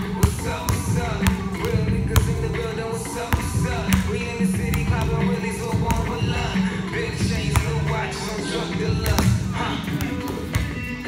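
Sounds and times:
basketball bouncing on gym floor: 0.0s - 2.7s, 3.3s - 6.6s, 7.2s - 8.0s, 8.9s - 10.9s
hip-hop music with vocals: 0.0s - 11.0s.

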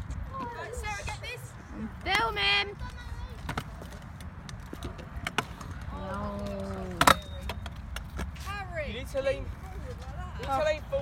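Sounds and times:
scooter wheels rumbling on concrete: 0.0s - 11.0s.

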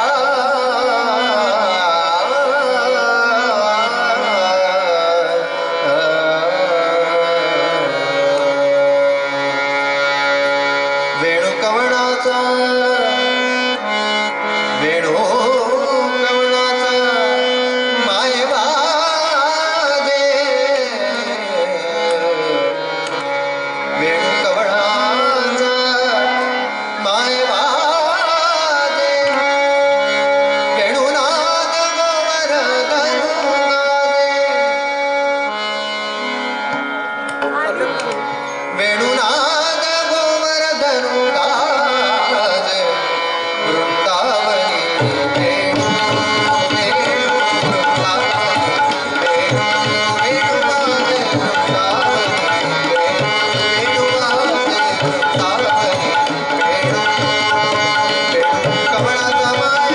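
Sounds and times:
harmonium: 0.0s - 59.9s
man singing devotional song: 0.0s - 59.9s
tabla strokes: 44.6s - 59.9s.

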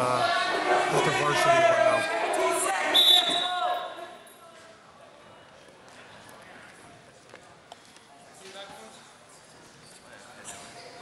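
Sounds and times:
referee's whistle blast: 2.9s - 3.6s.

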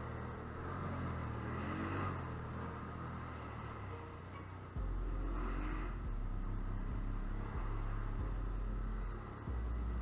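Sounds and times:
atv engine running: 0.0s - 10.0s.

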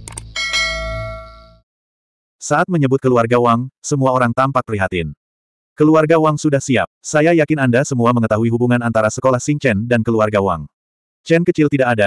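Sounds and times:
quick clicks: 0.0s - 0.4s
notification bell ding: 0.4s - 1.6s.

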